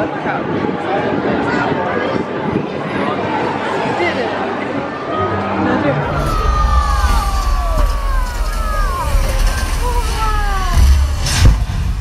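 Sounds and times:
loud low rumble: 6.0s - 12.0s.

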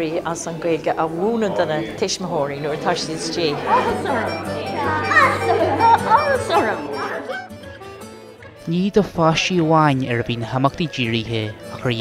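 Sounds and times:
music: 2.2s - 12.0s
children calling out together: 3.5s - 7.6s.

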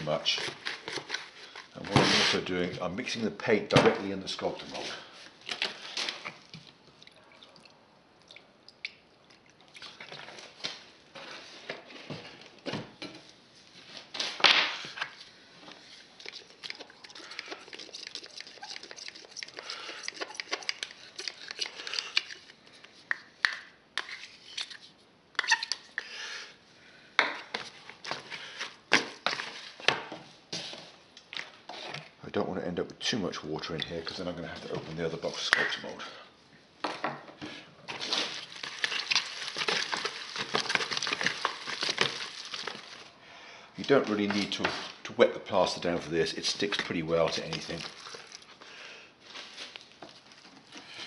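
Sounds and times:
metal scoop scraping plastic bucket: 0.0s - 2.7s, 37.9s - 43.0s.

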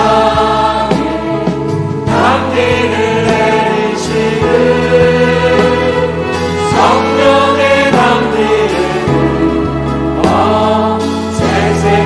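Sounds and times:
choir singing a hymn: 0.0s - 12.0s
instrumental accompaniment: 0.0s - 12.0s.

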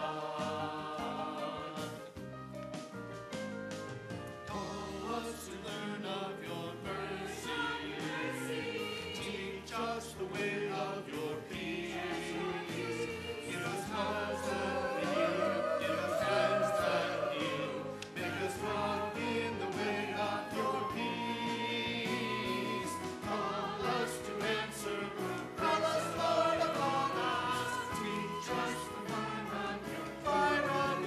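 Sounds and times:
choir singing in harmony: 0.0s - 2.2s, 4.5s - 31.0s.

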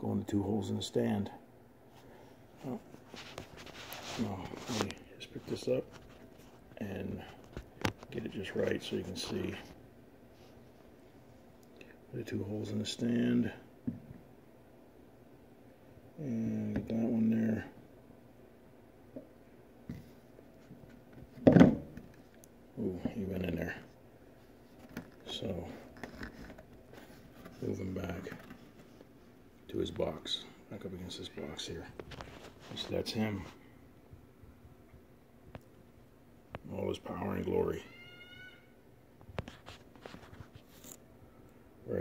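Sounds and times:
faint handling noise: 1.8s - 14.3s, 19.1s - 37.8s, 39.2s - 42.0s.

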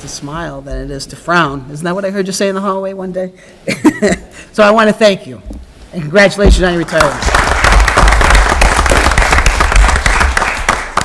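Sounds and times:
group applause: 6.8s - 11.0s.

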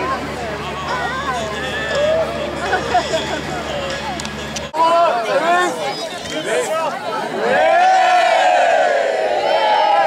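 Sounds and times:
crowd shouting and cheering: 0.0s - 10.0s.

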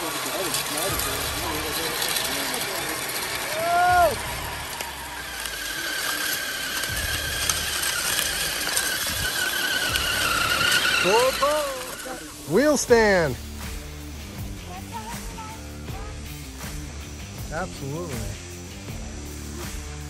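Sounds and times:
electric motor whining: 0.0s - 20.0s
sled dragging across dirt: 0.0s - 20.0s.

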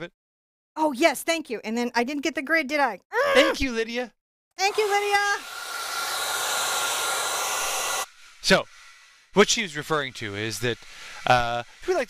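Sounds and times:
hair dryer blowing: 4.6s - 8.1s.

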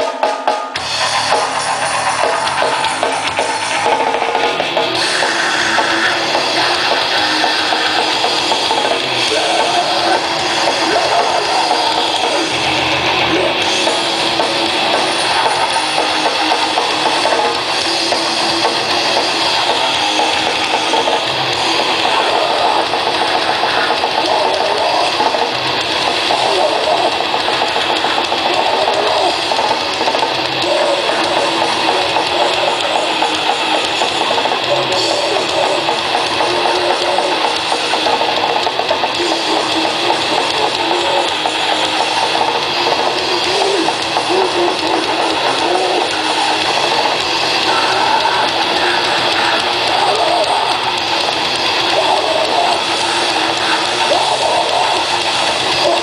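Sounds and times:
distorted electric guitars: 0.0s - 56.0s
drums: 0.0s - 56.0s
harsh shouted vocals: 1.2s - 56.0s.

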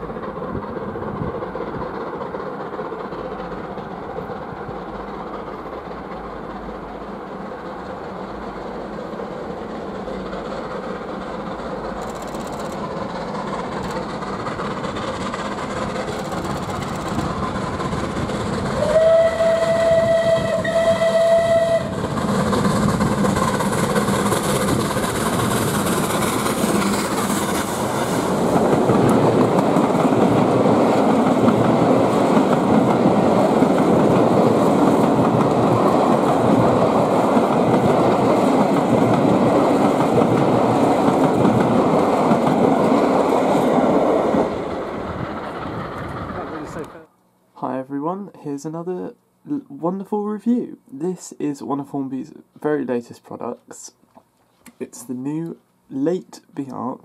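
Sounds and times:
train wheels rumbling on rails: 0.0s - 47.1s
steam locomotive whistle: 18.8s - 22.0s.

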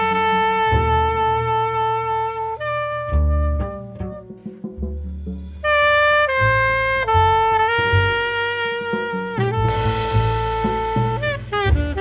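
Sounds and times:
saxophone playing: 0.0s - 4.8s, 5.6s - 12.0s
double bass notes: 0.0s - 12.0s.

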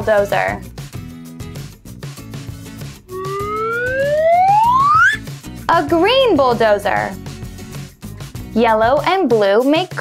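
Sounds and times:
light background music: 0.0s - 10.0s
rising pitched glide: 3.1s - 5.2s.

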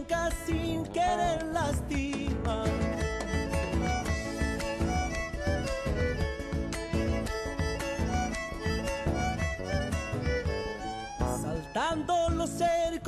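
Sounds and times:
driving rhythmic pulse: 0.0s - 12.8s
strummed guitar: 0.0s - 13.0s
fiddle melody: 1.0s - 12.9s.

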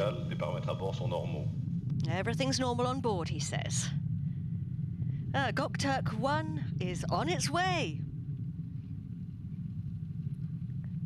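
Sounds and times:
rocket engine rumble: 0.0s - 11.0s.

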